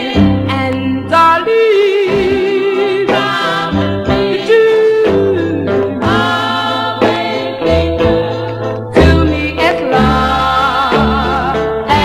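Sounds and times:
female vocal group singing harmony: 0:00.0 - 0:12.0.

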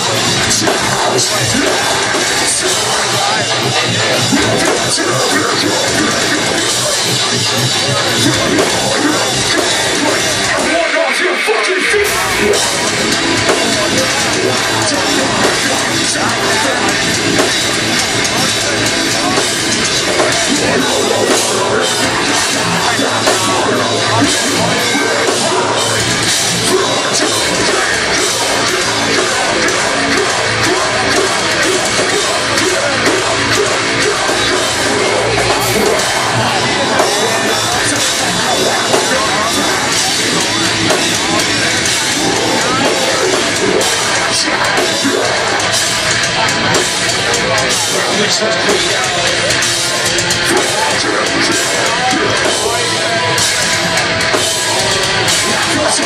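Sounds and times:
distorted electric guitars: 0:00.0 - 0:56.0
metal band playing live: 0:00.0 - 0:56.0
pounding drum kit: 0:00.0 - 0:56.0.

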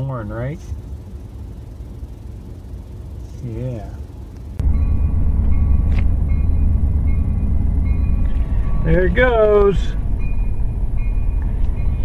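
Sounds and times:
diesel locomotive rumbling: 0:00.0 - 0:12.0.

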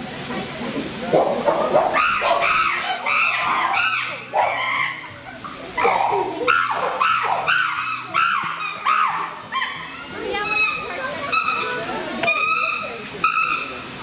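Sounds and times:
faint background music: 0:00.2 - 0:14.0
chimpanzees calling: 0:01.2 - 0:13.9.

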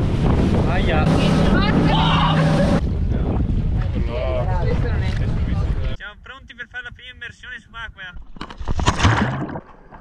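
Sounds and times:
wind buffeting microphone: 0:00.0 - 0:06.0.

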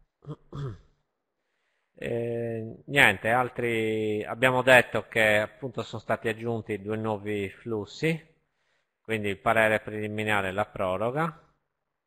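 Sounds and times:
man clearing throat: 0:00.2 - 0:00.9.

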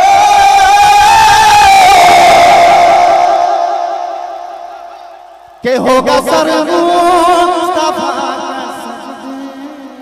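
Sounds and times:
man singing through loudspeakers: 0:00.0 - 0:04.3, 0:05.6 - 0:10.0
hall echo: 0:00.0 - 0:10.0.

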